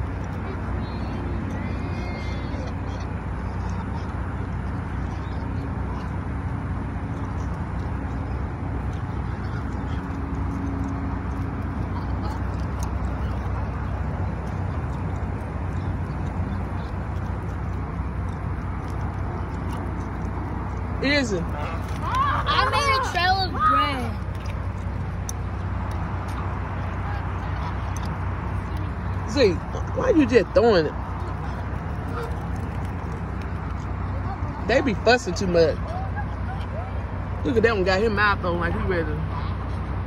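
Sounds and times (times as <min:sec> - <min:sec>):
car engine idling: 0:00.0 - 0:40.0.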